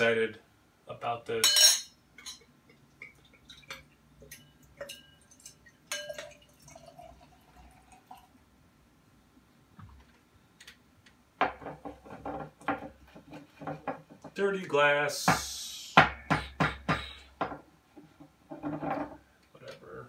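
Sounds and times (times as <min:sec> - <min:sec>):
beer trickling into glass: 0:02.8 - 0:08.4.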